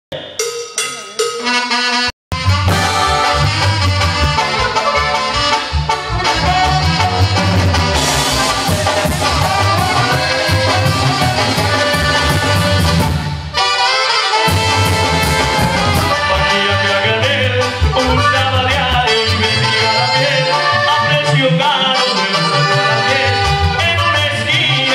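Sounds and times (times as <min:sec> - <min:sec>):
drums: 0:00.1 - 0:19.3
saxophones playing held notes: 0:00.8 - 0:17.0, 0:21.8 - 0:24.9
bass: 0:02.3 - 0:24.9.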